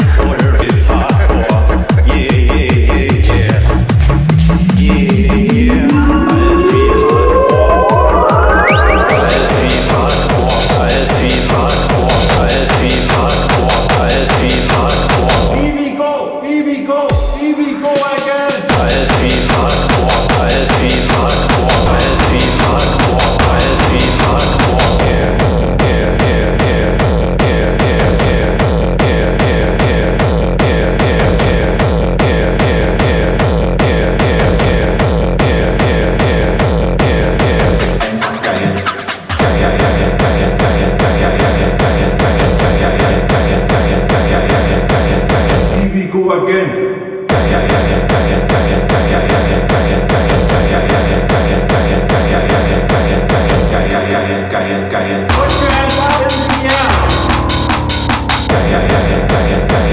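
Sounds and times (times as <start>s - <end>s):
fast kick drum beat: 0.0s - 7.8s, 18.0s - 38.1s, 55.3s - 59.9s
dense synths: 0.8s - 15.8s, 18.7s - 37.8s, 55.3s - 59.9s
sustained synth tone: 3.3s - 10.9s.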